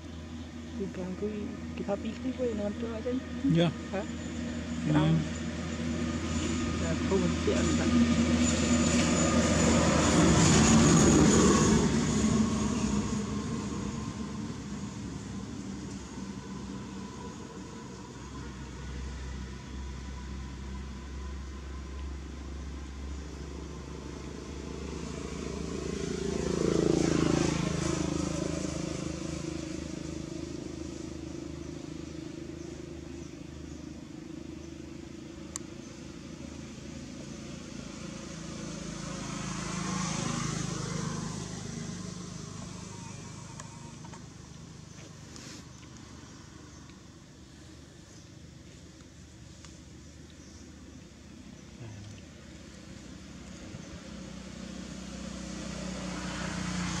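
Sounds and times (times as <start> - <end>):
low engine hum: 0.0 - 57.0
vehicles passing by: 0.0 - 57.0.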